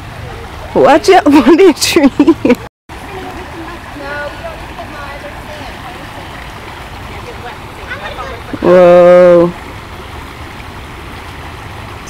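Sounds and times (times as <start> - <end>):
creek water running over rocks: 0.0 - 12.0.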